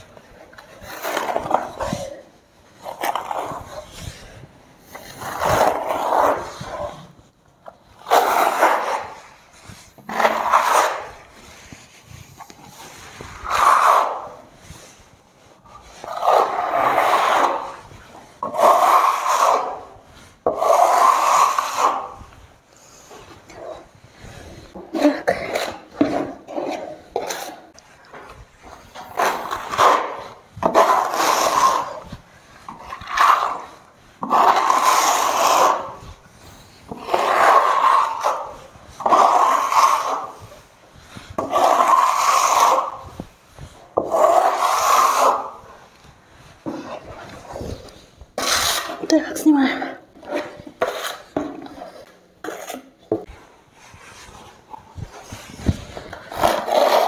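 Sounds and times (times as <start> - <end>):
trowel scraping plaster: 0.0 - 57.0.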